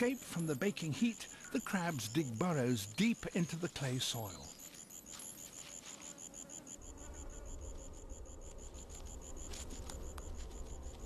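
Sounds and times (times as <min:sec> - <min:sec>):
insect chirping: 0:00.0 - 0:11.0.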